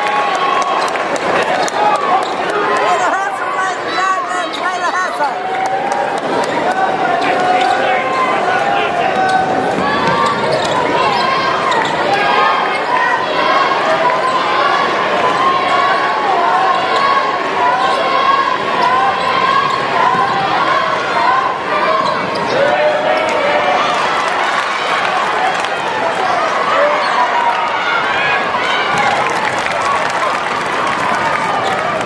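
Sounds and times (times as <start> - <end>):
loud din of crowd voices: 0.0 - 32.0.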